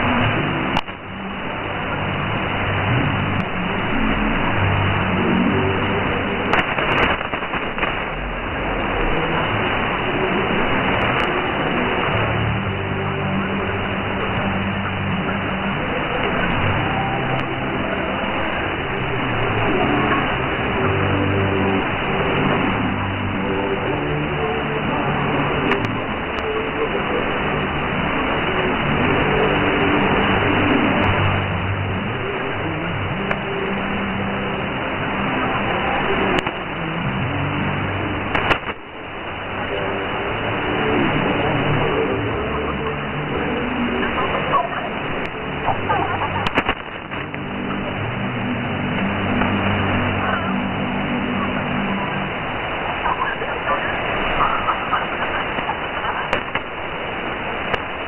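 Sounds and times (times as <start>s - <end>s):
radio static hiss: 0.0s - 58.0s
sharp static clicks: 0.0s - 58.0s
distorted radio voice: 39.6s - 58.0s.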